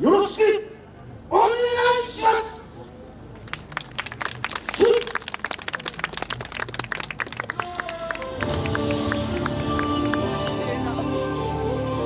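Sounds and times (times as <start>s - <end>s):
audience applause: 3.4s - 10.8s.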